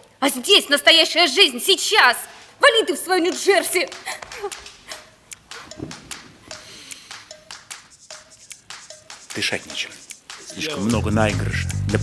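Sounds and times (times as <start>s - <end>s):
footsteps on wooden stage: 3.3s - 6.6s.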